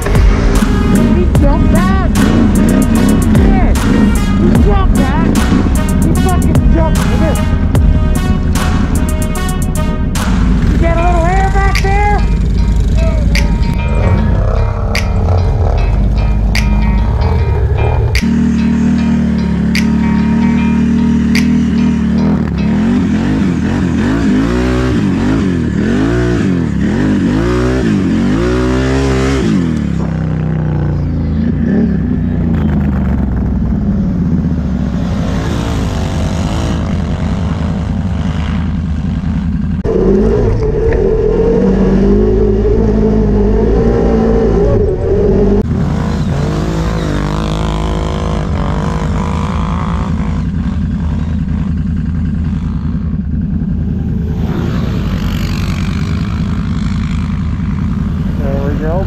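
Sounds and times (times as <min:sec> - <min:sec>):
atv engine revving: 0:00.0 - 0:59.0.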